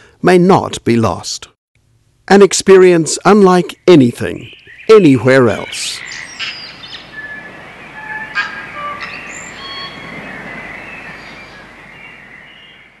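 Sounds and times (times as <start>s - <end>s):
birdsong whistled notes: 4.4s - 13.0s.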